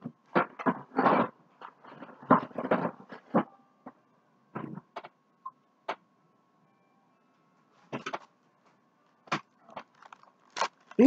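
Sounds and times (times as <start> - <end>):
plastic wrapping crackling: 9.3 - 11.0.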